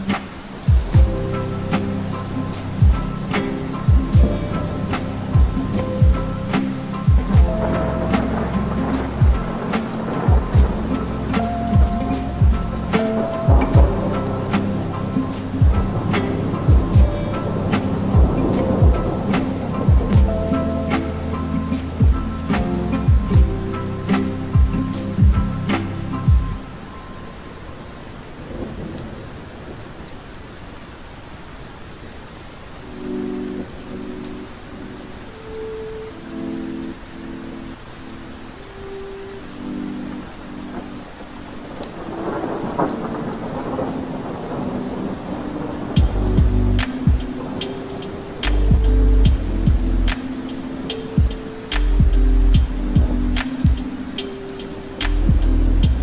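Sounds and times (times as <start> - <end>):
lo-fi hip hop beat: 0.0 - 27.4, 32.8 - 56.0
steady rain: 0.0 - 56.0.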